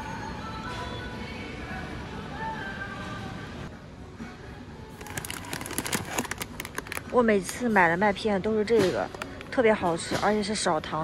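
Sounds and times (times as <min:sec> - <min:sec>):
plastic bag crinkling: 0:04.9 - 0:07.6.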